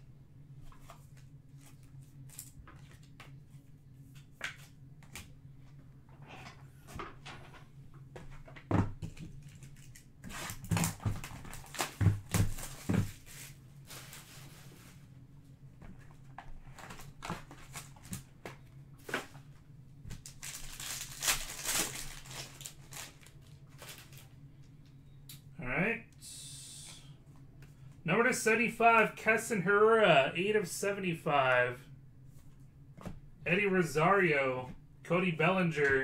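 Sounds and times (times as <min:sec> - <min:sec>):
knocks and thumps of boxes: 0:10.6 - 0:13.2
foil wrapper tearing and crinkling: 0:20.2 - 0:24.2
short vocal sound: 0:25.6 - 0:27.2.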